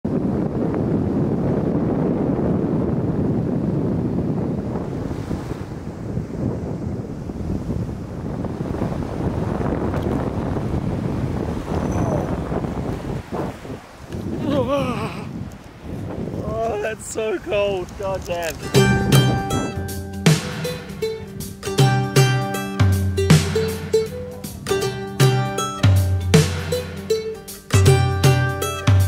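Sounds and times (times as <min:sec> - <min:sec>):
wind buffeting microphone: 0:00.0 - 0:27.2
small waves washing onto beach: 0:03.0 - 0:18.8.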